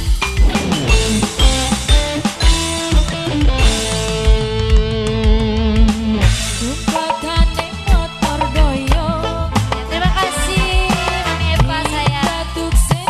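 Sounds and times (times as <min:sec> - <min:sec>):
drum beat: 0:00.0 - 0:13.0
live band playing: 0:00.0 - 0:13.0
held lead note with vibrato: 0:00.4 - 0:05.2.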